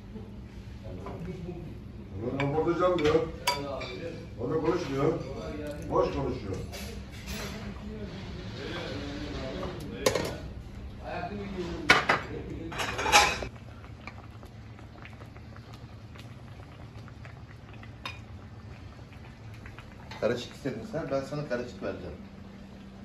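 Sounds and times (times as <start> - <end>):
low kitchen hum: 0.0 - 23.0.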